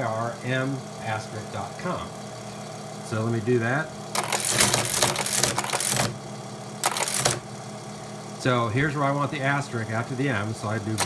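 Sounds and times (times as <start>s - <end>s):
motor humming: 0.0s - 11.0s
teletype clattering: 4.1s - 6.2s, 6.8s - 7.5s, 10.8s - 11.0s.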